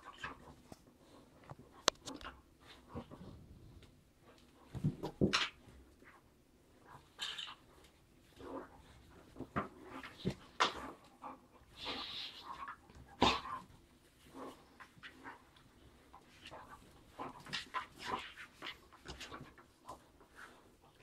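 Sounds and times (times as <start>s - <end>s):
dogs mouthing and scuffling: 0.0s - 21.0s
dogs vocalizing while playing: 4.2s - 21.0s.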